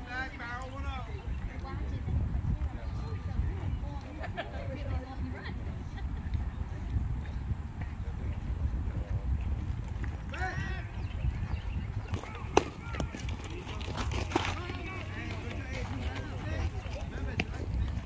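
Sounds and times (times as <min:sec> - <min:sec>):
voices of players and spectators: 0:00.0 - 0:18.0.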